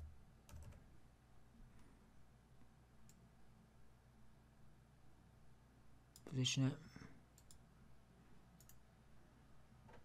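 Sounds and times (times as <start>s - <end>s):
computer keyboard clicks: 0.0s - 0.8s.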